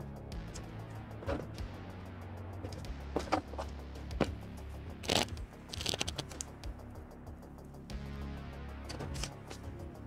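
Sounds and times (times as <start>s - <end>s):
background music with bass line: 0.0s - 10.0s
paper and card rustling: 5.0s - 6.4s.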